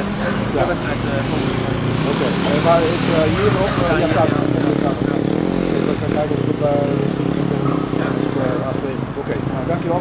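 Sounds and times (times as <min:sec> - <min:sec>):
motorcycle engines droning: 0:00.0 - 0:10.0
voices: 0:00.0 - 0:10.0.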